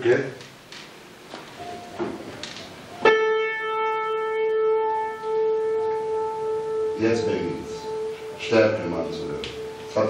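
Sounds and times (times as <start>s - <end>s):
piano note ringing: 1.6s - 10.0s.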